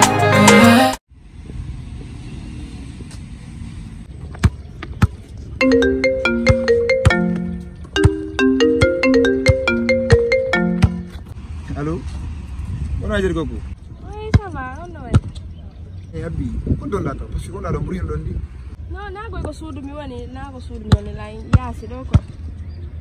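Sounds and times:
basketball bouncing on concrete: 0:04.3 - 0:05.3, 0:06.4 - 0:08.3, 0:09.4 - 0:11.3, 0:14.3 - 0:15.4, 0:20.9 - 0:22.3
mobile phone ringtone melody: 0:05.6 - 0:11.3.

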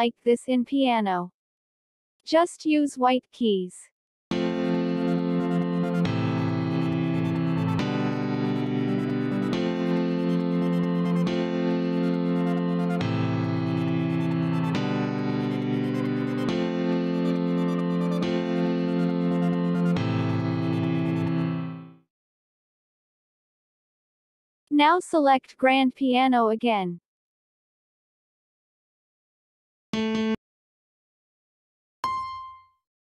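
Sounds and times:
piano chords: 0:04.3 - 0:22.0, 0:30.0 - 0:30.4.

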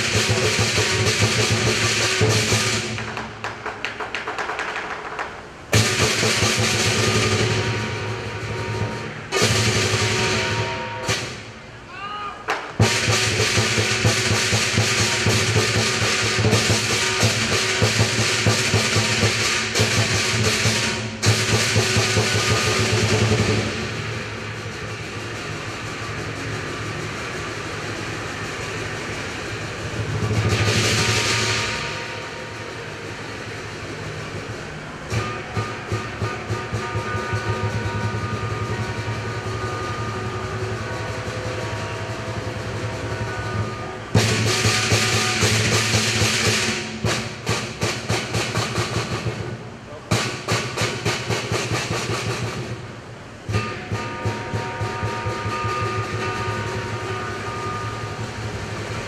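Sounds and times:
crashing cymbals: 0:00.0 - 0:03.4, 0:05.7 - 0:11.9, 0:12.8 - 0:59.0
drum beats: 0:00.0 - 0:59.0
gong: 0:05.7 - 0:11.4, 0:12.8 - 0:49.5, 0:53.4 - 0:59.0.

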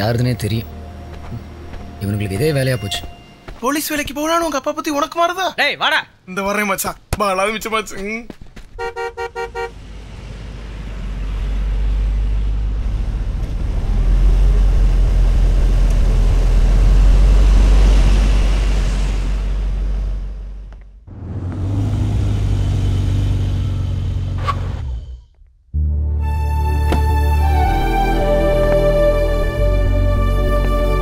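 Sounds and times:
car horn beeps: 0:08.8 - 0:09.8
car driving past: 0:09.5 - 0:25.2.

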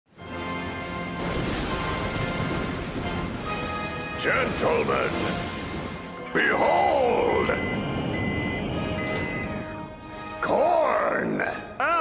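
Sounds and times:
background music: 0:00.1 - 0:12.0
high electronic beep: 0:07.3 - 0:09.6.

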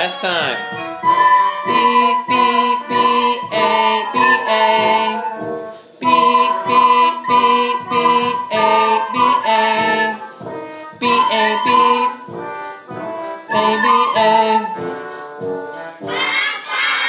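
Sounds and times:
children playing recorders: 0:00.0 - 0:12.6, 0:13.4 - 0:15.0, 0:16.0 - 0:17.0.

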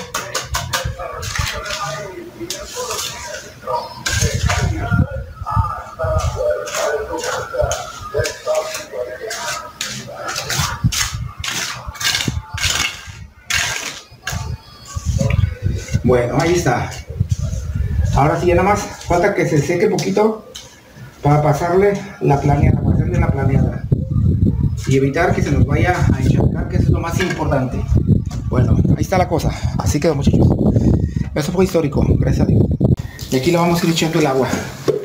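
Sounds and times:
trowel scraping wet cement: 0:00.0 - 0:04.9, 0:06.1 - 0:17.7
man talking: 0:00.0 - 0:10.8, 0:14.3 - 0:20.6, 0:21.2 - 0:23.9, 0:24.8 - 0:30.6, 0:31.2 - 0:34.8.

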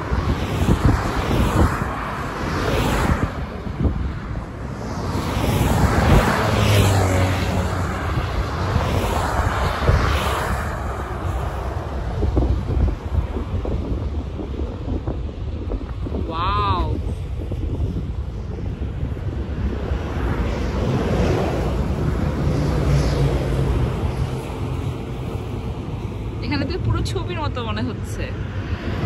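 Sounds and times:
motorway traffic rushing: 0:00.0 - 0:29.0
wind buffeting microphone: 0:00.0 - 0:29.0.

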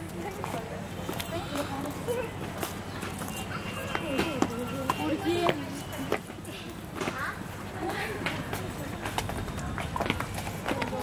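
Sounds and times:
footsteps on stone paving: 0:00.0 - 0:11.0
murmur of voices: 0:00.0 - 0:11.0.

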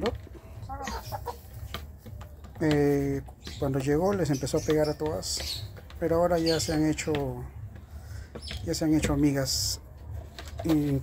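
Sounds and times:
hens clucking: 0:00.0 - 0:11.0.

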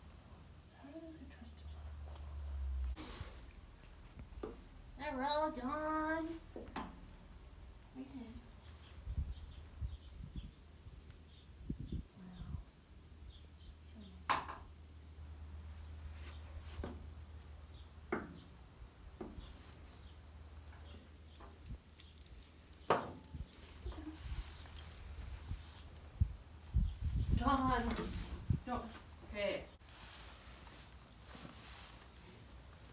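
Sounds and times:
insects chirping: 0:00.0 - 0:32.9
bridle hardware clinking: 0:20.4 - 0:25.3.

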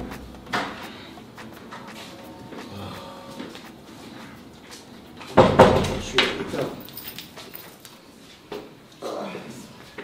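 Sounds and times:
wooden door shutting with knock: 0:05.4 - 0:06.1.

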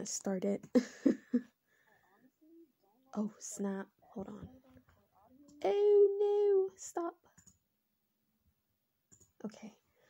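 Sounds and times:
faint clicks: 0:07.3 - 0:07.6, 0:09.1 - 0:09.4.

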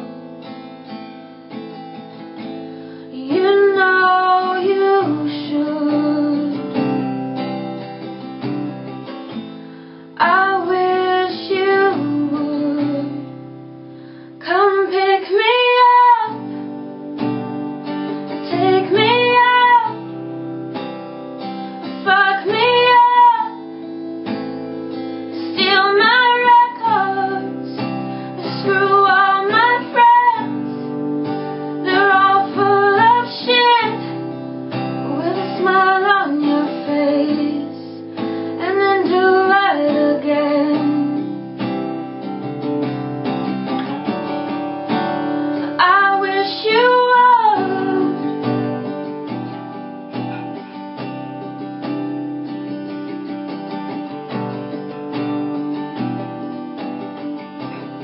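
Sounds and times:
acoustic guitar: 0:00.0 - 0:58.0
woman singing: 0:02.4 - 0:07.2, 0:10.2 - 0:13.7, 0:14.3 - 0:16.8, 0:18.1 - 0:20.5, 0:21.8 - 0:24.4, 0:25.2 - 0:41.8, 0:44.9 - 0:49.4.

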